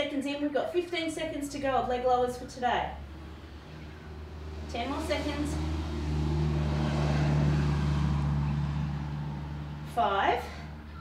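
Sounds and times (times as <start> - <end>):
car driving past: 2.8 - 11.0.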